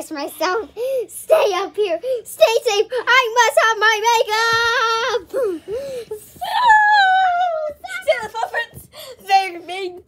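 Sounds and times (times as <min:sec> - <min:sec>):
girl's swooping cries: 0:05.2 - 0:08.2.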